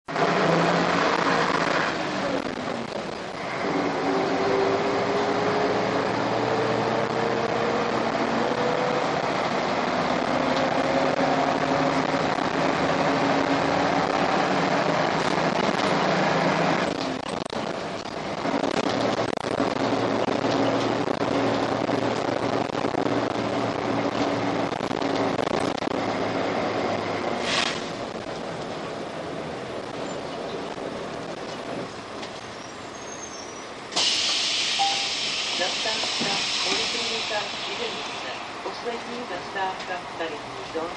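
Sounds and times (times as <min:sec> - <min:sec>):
bus diesel engine pulling hard: 0:00.1 - 0:40.9.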